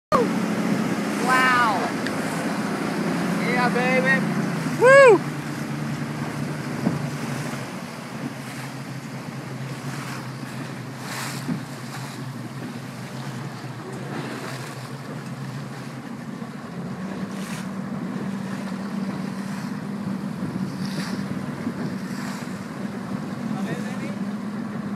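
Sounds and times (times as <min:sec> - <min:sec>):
boat motor humming: 0:00.1 - 0:24.9
water rushing along hull: 0:00.1 - 0:24.9
wind: 0:00.1 - 0:24.9
person crying out excitedly: 0:04.8 - 0:05.2.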